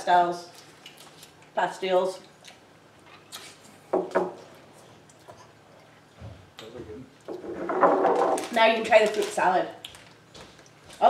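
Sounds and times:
people talking at a table: 6.6 - 9.8.

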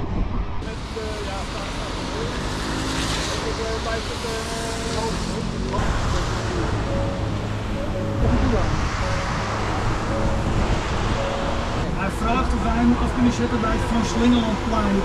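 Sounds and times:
wind: 0.0 - 15.0
traffic hiss on wet road: 0.6 - 7.6.

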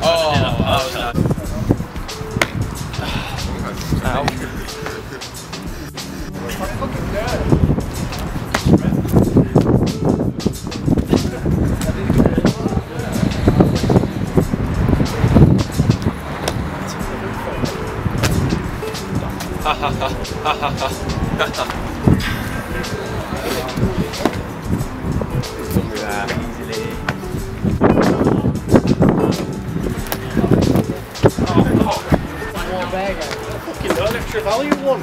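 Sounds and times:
people laughing: 3.4 - 7.4, 19.4 - 24.3
shoes landing on paving: 30.0 - 30.8.

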